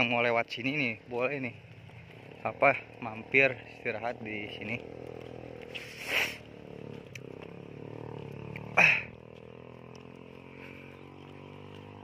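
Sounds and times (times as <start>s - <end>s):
small motorcycle engine running: 0.0s - 12.0s.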